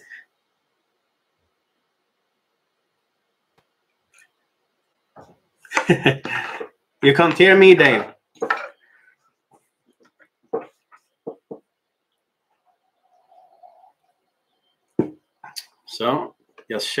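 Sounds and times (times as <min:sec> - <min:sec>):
mug handling noises: 0:05.2 - 0:08.8, 0:10.0 - 0:11.7.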